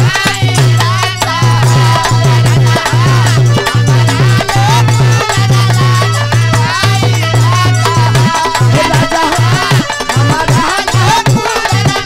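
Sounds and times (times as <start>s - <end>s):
dholak drum strokes: 0.0s - 12.0s
harmonium: 0.0s - 12.0s.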